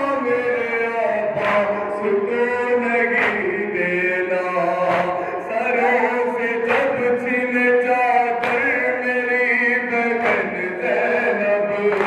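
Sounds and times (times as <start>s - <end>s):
men chanting in unison: 0.0s - 12.0s
hands slapping chests: 1.4s - 1.8s, 3.2s - 3.4s, 4.8s - 6.1s, 6.7s - 7.2s, 8.4s - 8.8s, 10.2s - 10.6s.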